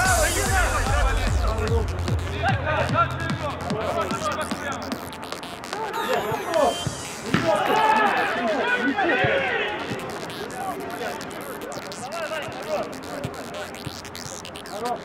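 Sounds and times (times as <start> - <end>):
players shouting: 5.7 - 10.9.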